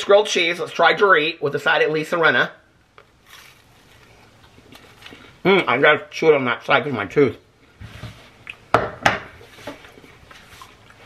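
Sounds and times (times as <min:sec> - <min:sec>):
quiet chewing: 0:03.0 - 0:05.4, 0:08.3 - 0:08.7, 0:09.4 - 0:11.0
crunch of biting a sandwich: 0:03.2 - 0:05.4.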